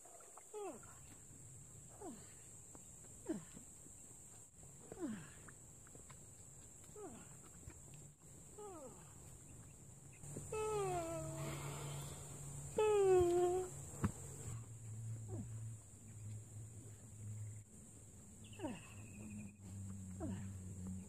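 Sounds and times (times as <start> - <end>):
drawn-out voiced calls: 10.3 - 14.6.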